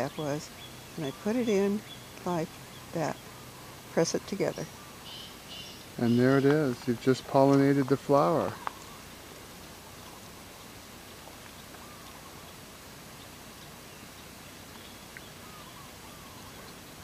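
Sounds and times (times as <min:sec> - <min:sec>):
outdoor background hiss: 0:00.0 - 0:17.0.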